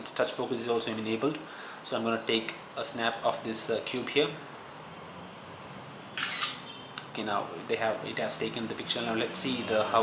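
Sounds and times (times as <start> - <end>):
phone camera shutter click: 6.2 - 6.6.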